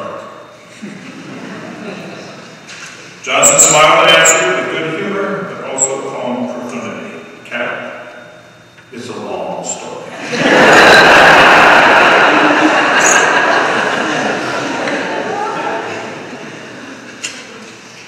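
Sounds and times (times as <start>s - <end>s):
crowd laughing: 0.7s - 2.4s, 10.1s - 17.8s.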